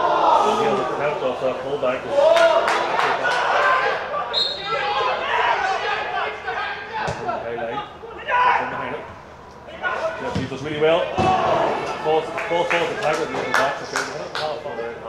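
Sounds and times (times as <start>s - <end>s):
players shouting echoing: 2.0s - 13.4s.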